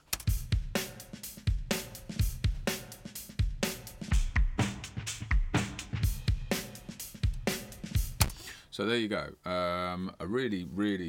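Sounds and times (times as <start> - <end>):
acoustic drum kit groove: 0.0 - 8.6.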